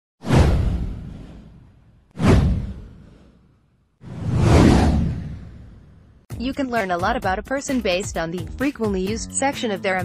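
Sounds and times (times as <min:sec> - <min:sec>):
falling swoosh: 0:00.2 - 0:06.2
deep low boom: 0:00.3 - 0:03.2.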